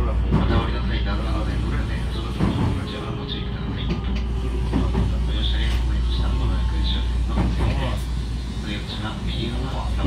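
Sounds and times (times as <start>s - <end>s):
electric train humming: 0.0s - 10.0s.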